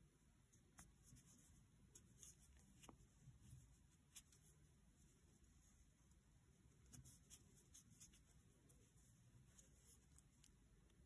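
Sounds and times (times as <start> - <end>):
crochet hook rubbing yarn: 6.7 - 10.3.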